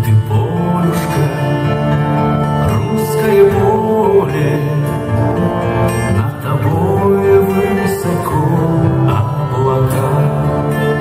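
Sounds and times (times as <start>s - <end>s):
choir singing: 0.3s - 11.0s.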